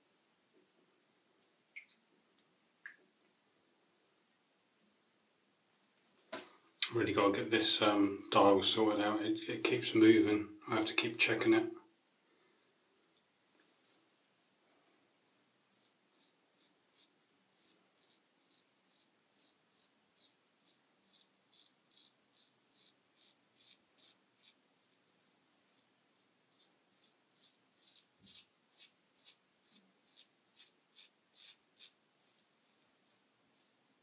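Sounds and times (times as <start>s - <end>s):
razor scraping lathered stubble: 15.3s - 24.6s, 25.7s - 33.7s.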